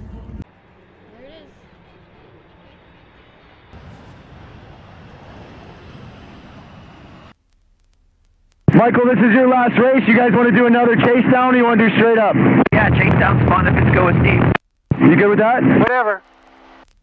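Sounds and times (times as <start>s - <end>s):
jet aircraft low pass: 0.0s - 7.4s.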